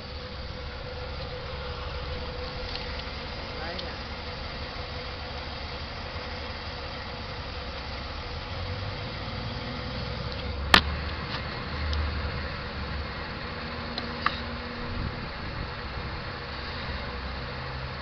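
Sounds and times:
car engine idling: 0:00.0 - 0:18.0.

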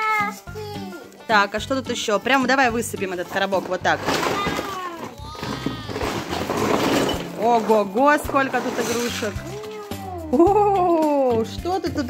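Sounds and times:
plastic toys clattering on floor: 0:03.0 - 0:09.8.

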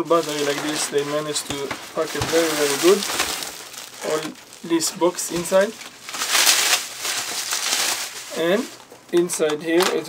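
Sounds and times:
bubble wrap crinkling: 0:00.0 - 0:09.4.

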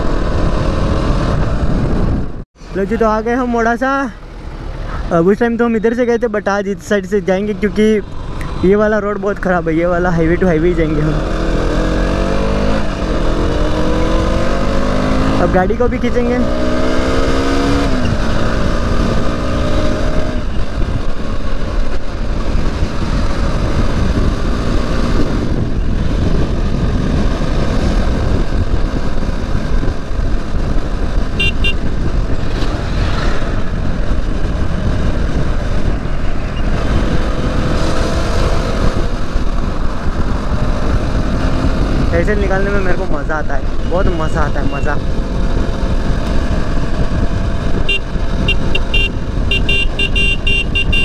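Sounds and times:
wind rumble on microphone: 0:00.0 - 0:03.0, 0:07.2 - 0:51.0
motorcycle engine running: 0:18.1 - 0:36.2, 0:43.6 - 0:51.0
short horn beep: 0:31.4 - 0:31.8, 0:47.9 - 0:51.0.

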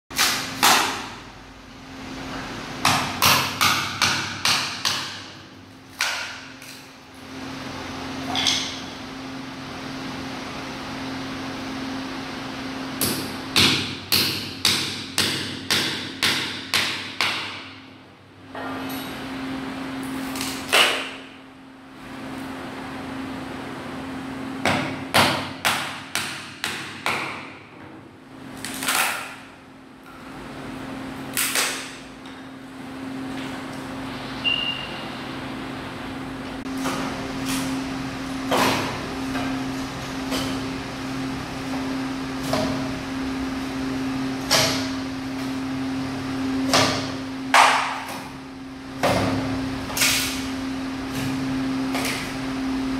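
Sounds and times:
steady low hum: 0:00.1 - 0:52.9.

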